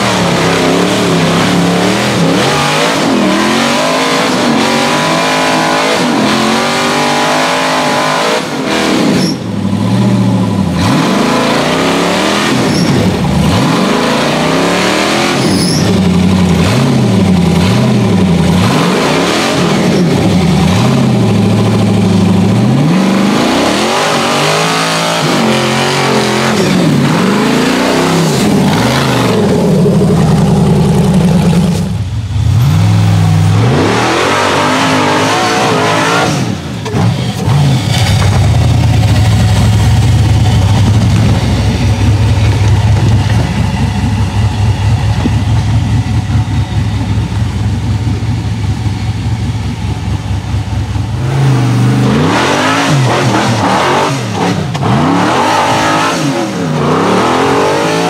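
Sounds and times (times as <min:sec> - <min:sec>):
buggy engine revving: 0:00.0 - 0:58.0.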